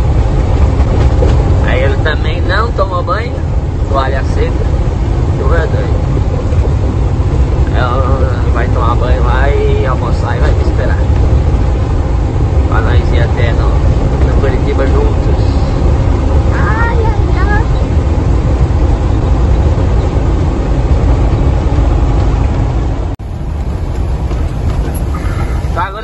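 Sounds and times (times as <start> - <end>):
truck engine rumble: 0.0 - 26.0
tyres on wet road: 0.0 - 26.0.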